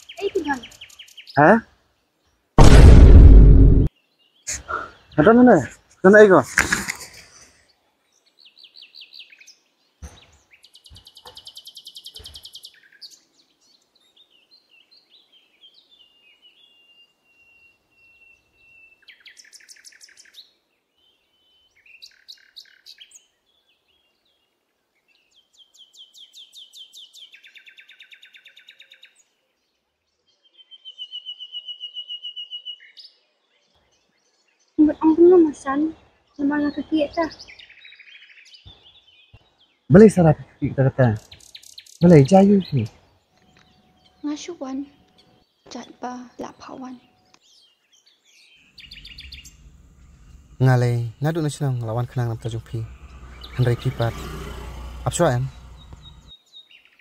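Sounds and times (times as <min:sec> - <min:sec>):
small birds chirping and trilling: 0:00.0 - 0:02.5, 0:03.9 - 0:57.0.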